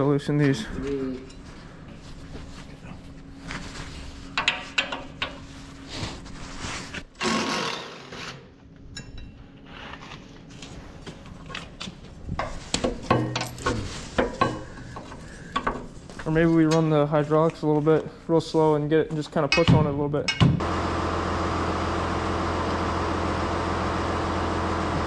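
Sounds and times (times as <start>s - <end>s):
metal tools clicking and knocking: 12.4s - 15.9s.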